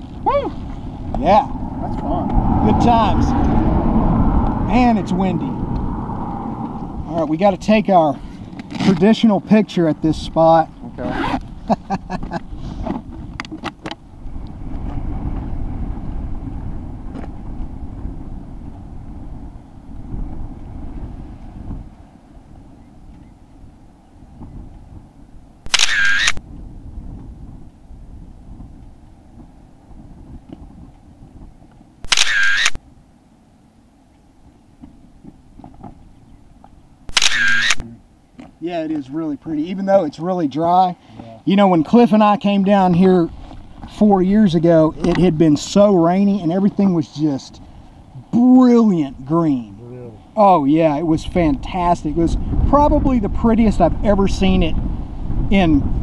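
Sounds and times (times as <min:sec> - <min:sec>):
wind buffeting microphone: 0:00.0 - 0:25.8, 0:26.4 - 0:32.1, 0:41.4 - 0:56.0
camera shutter clicks: 0:25.7 - 0:26.4, 0:32.1 - 0:32.8, 0:37.1 - 0:37.8.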